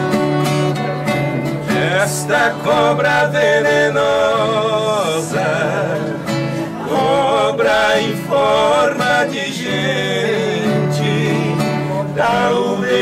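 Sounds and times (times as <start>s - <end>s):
acoustic guitars: 0.0s - 13.0s
men singing slow country ballad: 1.6s - 13.0s.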